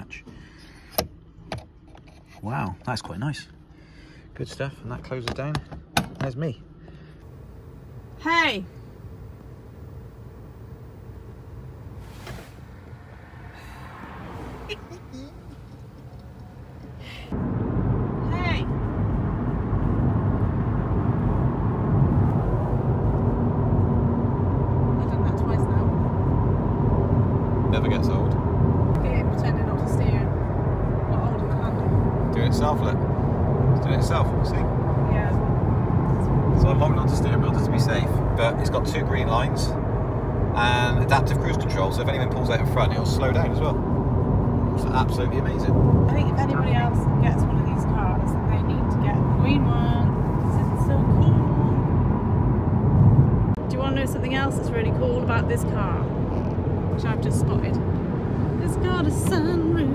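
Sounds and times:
road and tyre rumble in car cabin: 0.0 - 3.7, 7.2 - 59.9.

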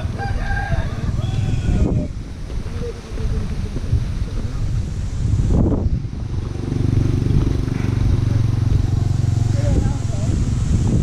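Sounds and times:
motorcycle engine running: 5.6 - 11.0.

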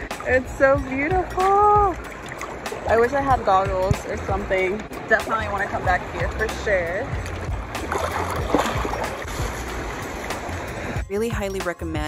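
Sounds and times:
water sloshing and lapping: 0.0 - 12.0
water splashes: 0.0 - 12.0.

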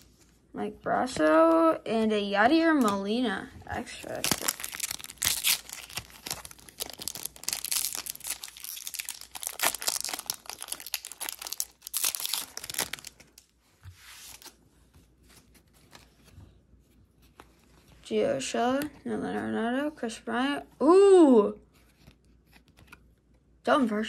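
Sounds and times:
foil wrapper tearing and crinkling: 3.9 - 13.5.

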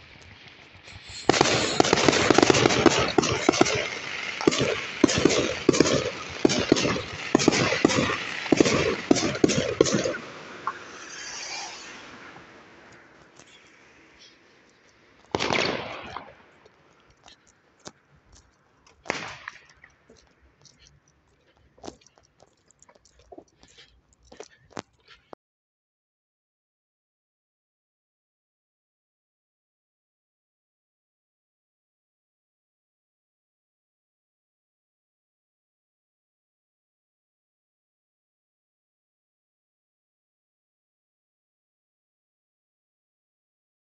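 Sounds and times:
fireworks crackling pops: 0.0 - 20.9
faint clicks: 16.6 - 25.4.

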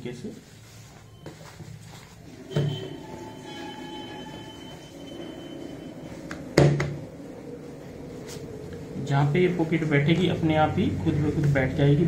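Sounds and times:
low hum with high whine: 0.0 - 12.0.

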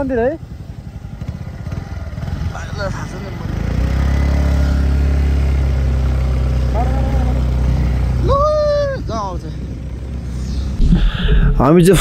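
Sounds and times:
vehicle engine running: 0.0 - 12.0
person calling out: 10.8 - 11.8.

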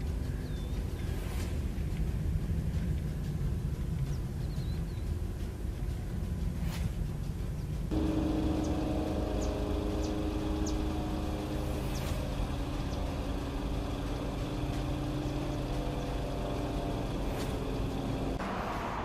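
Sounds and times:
engine running: 0.0 - 19.0.

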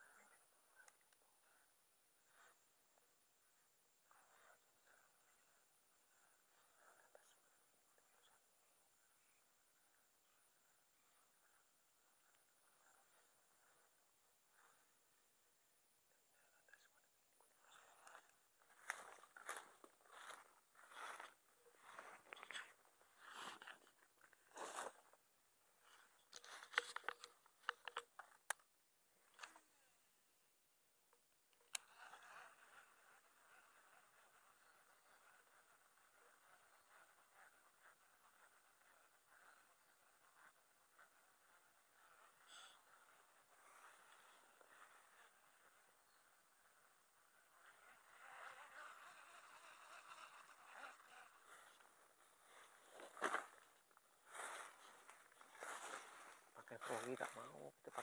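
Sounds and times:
soft steady hiss: 0.0 - 58.0
rustling through grass: 17.7 - 25.1, 50.8 - 58.0
fishing rod clicks: 26.3 - 28.6.

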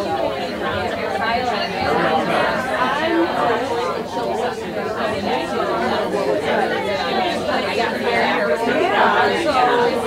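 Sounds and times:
overlapping conversations: 0.0 - 10.0.

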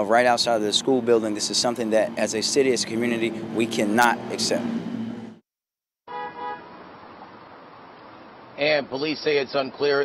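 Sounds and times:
street traffic noise: 0.0 - 5.4, 6.1 - 10.0
car horn toot: 6.1 - 6.7.

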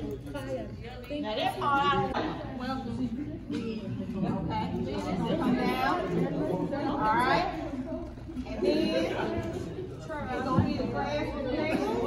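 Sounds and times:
people chattering in a large hall: 0.0 - 12.0.

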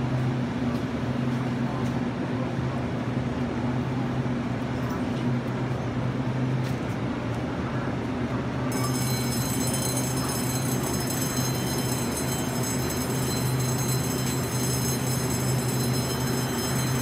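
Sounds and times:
train equipment low hum: 0.0 - 17.0.

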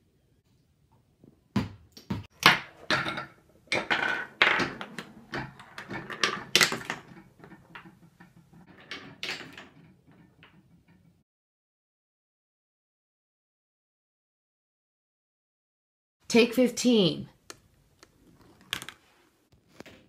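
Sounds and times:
wooden blocks knocking and clacking: 2.2 - 11.2, 17.4 - 19.0.

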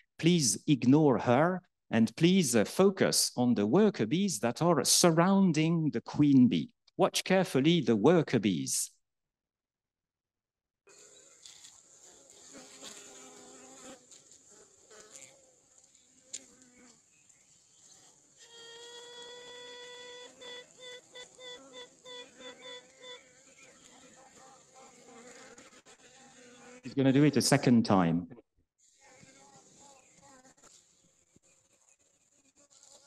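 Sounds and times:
queen bee tooting: 10.9 - 15.6, 17.8 - 27.3
honey bee colony buzzing: 10.9 - 27.0, 29.0 - 33.0.

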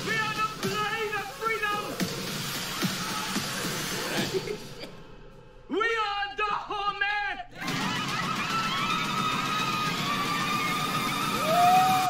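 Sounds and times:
dense noisy sound bed: 0.0 - 12.0.

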